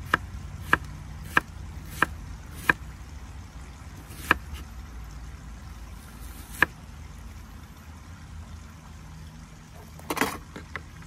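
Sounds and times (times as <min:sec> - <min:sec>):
knife chopping on wooden board: 0:00.0 - 0:02.8, 0:04.1 - 0:04.7, 0:06.4 - 0:06.8.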